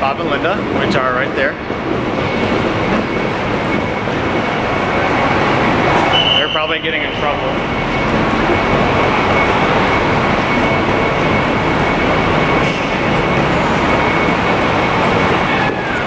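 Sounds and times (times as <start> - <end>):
traffic and idling vehicles: 0.0 - 16.0.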